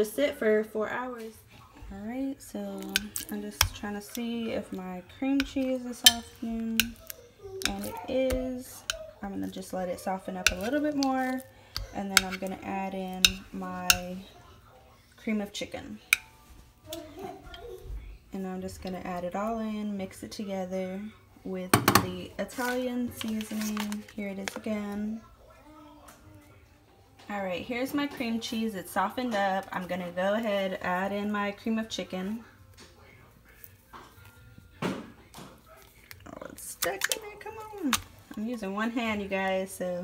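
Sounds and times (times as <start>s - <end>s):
metal knife clinking on crock: 5.4s - 9.0s.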